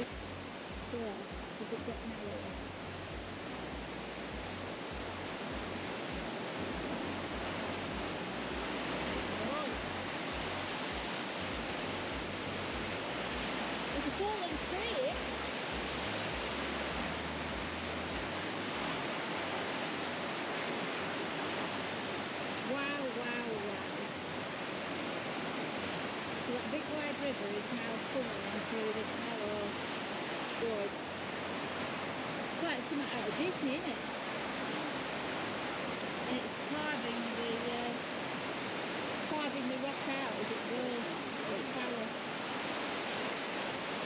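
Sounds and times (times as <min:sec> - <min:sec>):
river water rushing: 0:00.0 - 0:44.0.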